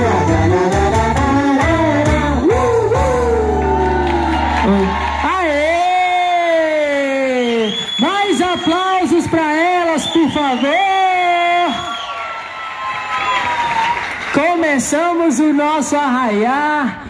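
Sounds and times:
person calling out cheers: 0:03.1 - 0:08.8
crowd cheering: 0:03.1 - 0:14.5.

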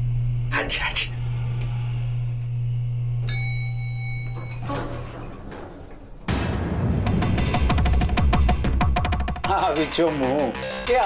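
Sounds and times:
elevator bell ding: 0:03.2 - 0:06.4.

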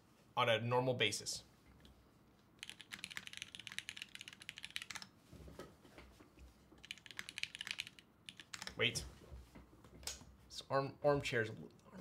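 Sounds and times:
fast mechanical keyboard typing: 0:02.6 - 0:05.1, 0:06.8 - 0:08.8.

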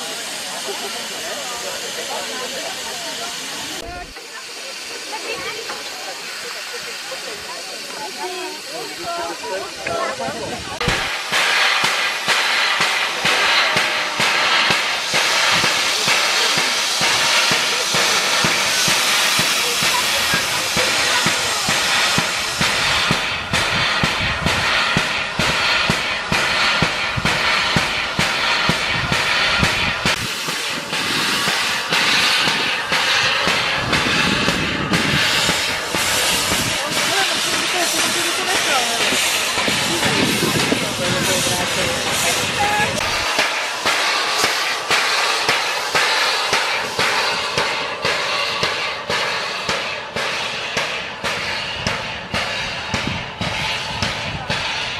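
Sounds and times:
steam locomotive hissing: 0:00.0 - 0:54.9.

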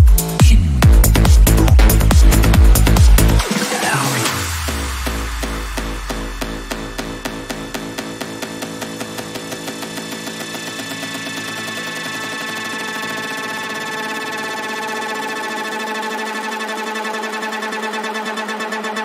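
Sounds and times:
pulsing synthesizer chords: 0:00.0 - 0:19.0.

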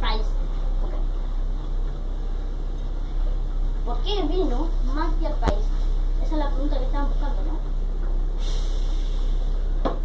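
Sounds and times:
steady low hum: 0:00.0 - 0:10.0
faint hiss: 0:08.4 - 0:09.8.

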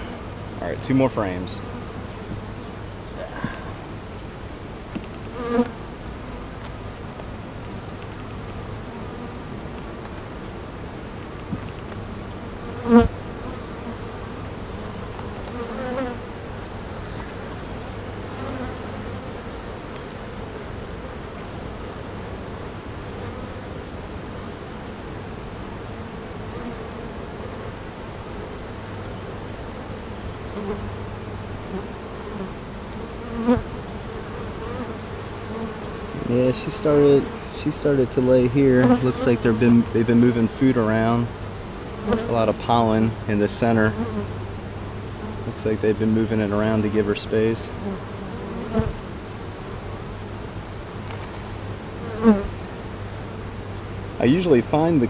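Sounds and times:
honey bees buzzing: 0:00.0 - 0:55.0.

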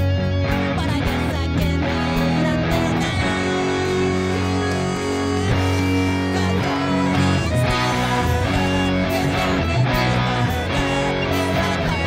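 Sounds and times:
electric guitar playing rock chords: 0:00.0 - 0:12.0.

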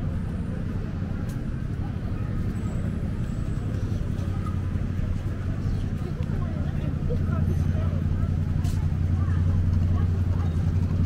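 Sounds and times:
car engines running: 0:00.0 - 0:11.0
city traffic rumble: 0:00.0 - 0:11.0.

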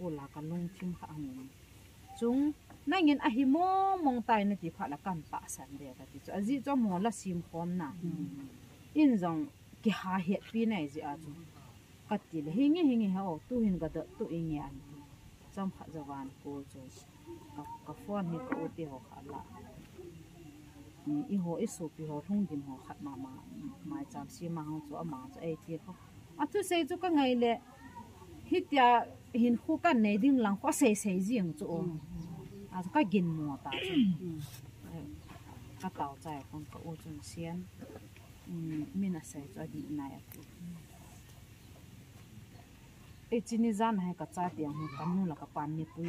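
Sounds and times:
woman speaking emphatically: 0:00.0 - 0:01.4, 0:02.2 - 0:08.4, 0:17.6 - 0:19.5, 0:32.8 - 0:35.1
woman speaking: 0:00.0 - 0:20.0, 0:21.0 - 0:27.6, 0:28.4 - 0:41.2, 0:43.3 - 0:46.0.

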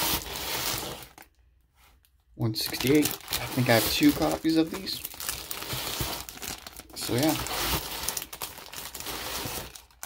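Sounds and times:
plastic bags crinkling: 0:02.4 - 0:10.0.

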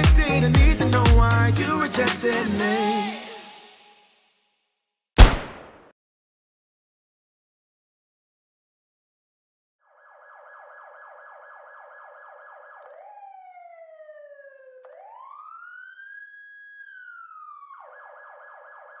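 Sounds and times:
siren warbling and wailing: 0:09.8 - 0:19.0.

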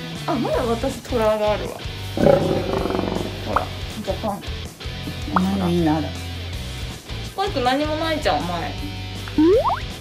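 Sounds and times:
background music: 0:00.0 - 0:10.0
rough growl: 0:02.1 - 0:03.8.

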